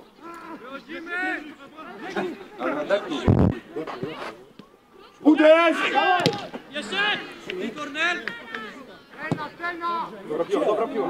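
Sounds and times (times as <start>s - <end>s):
players shouting: 0.1s - 3.9s, 5.1s - 11.0s.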